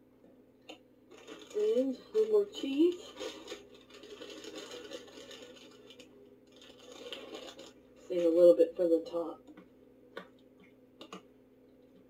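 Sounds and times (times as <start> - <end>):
cheese grating scrape: 3.0 - 5.8, 6.6 - 7.8.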